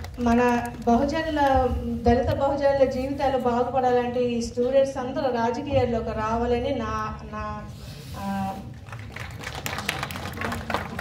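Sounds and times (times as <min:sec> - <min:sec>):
audience clapping: 0:00.0 - 0:01.5, 0:08.8 - 0:11.0.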